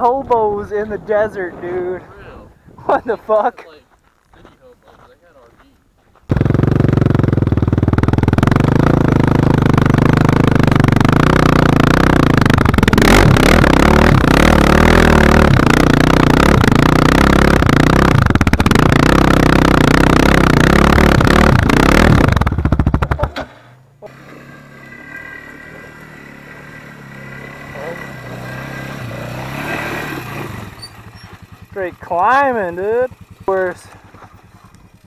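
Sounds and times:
engine idling: 6.3 - 24.3, 30.6 - 35.0
quad engine revving under load: 6.3 - 35.0.

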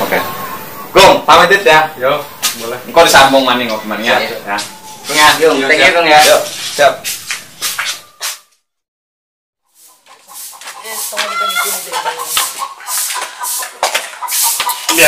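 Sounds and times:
voices: 0.0 - 7.8, 10.0 - 15.0.

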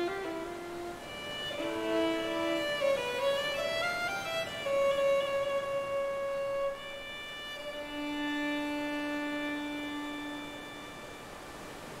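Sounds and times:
violin holding low note: 0.0 - 11.5.

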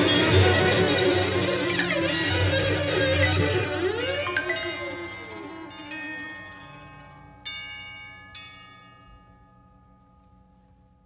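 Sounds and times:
ensemble music: 0.0 - 7.5
sharp ringing notes: 0.0 - 9.4.

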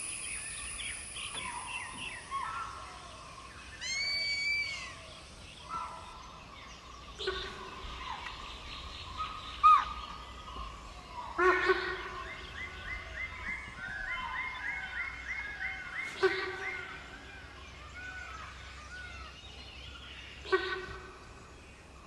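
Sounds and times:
bird calls: 0.0 - 22.0.

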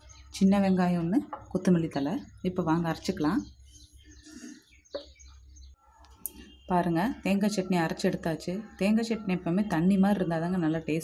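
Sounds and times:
faint bird chirps: 1.3 - 7.7.

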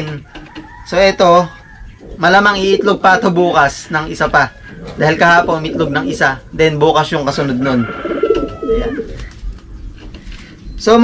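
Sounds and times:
pigeon cooing: 1.4 - 6.6, 7.3 - 10.6.

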